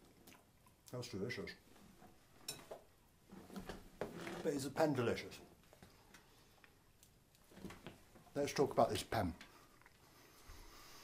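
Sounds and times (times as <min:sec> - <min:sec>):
faint handling and rustling: 0:01.4 - 0:11.0.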